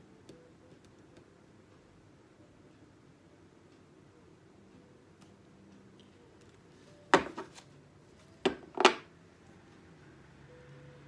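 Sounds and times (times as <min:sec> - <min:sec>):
card deck tapping on wooden table: 0:07.2 - 0:07.6.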